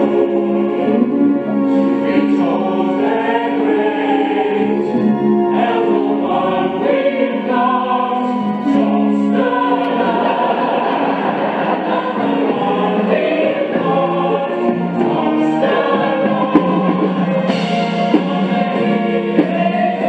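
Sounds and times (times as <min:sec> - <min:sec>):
chorus singing: 0:00.0 - 0:20.0
musical accompaniment: 0:00.0 - 0:20.0.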